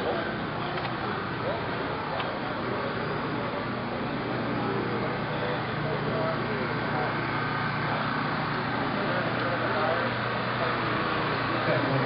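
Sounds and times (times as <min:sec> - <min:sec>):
faint voices: 0:00.0 - 0:12.0
street hum and hiss: 0:00.0 - 0:12.0.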